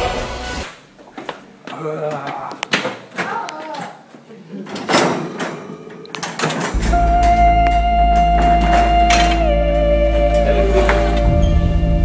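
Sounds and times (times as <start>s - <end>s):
held music tone over deep bass: 6.8s - 12.0s.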